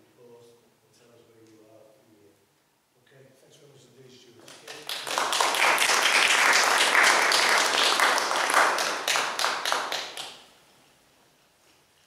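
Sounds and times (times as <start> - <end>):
small group clapping: 4.4 - 10.5.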